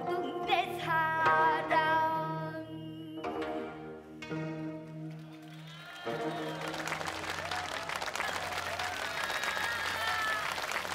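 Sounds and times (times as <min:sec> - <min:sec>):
string ensemble notes ringing: 0:00.0 - 0:07.6
audience applause: 0:05.2 - 0:10.9.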